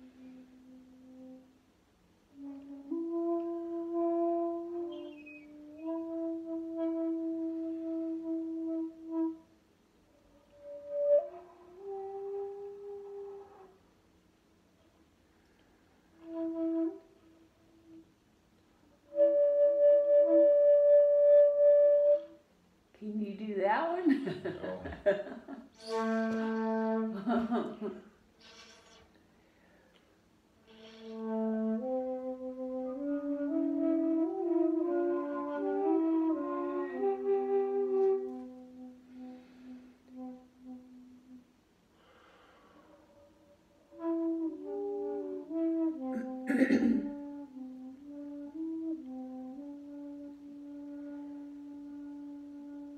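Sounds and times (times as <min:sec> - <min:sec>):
lower flute tone: 0:00.0 - 0:14.0, 0:15.5 - 0:18.2, 0:18.8 - 0:22.6, 0:25.7 - 0:27.6, 0:30.6 - 0:52.9
bamboo flute notes: 0:02.3 - 0:13.8, 0:15.4 - 0:18.2, 0:18.9 - 0:22.5, 0:25.7 - 0:27.2, 0:30.6 - 0:46.5, 0:47.2 - 0:52.9
person speaking: 0:23.0 - 0:26.0.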